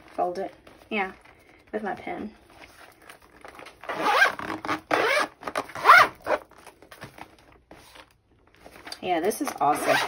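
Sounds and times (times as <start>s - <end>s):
handling of folio: 0.0s - 3.9s, 6.4s - 9.6s
metal zipper rasping: 3.8s - 6.4s, 9.6s - 10.0s.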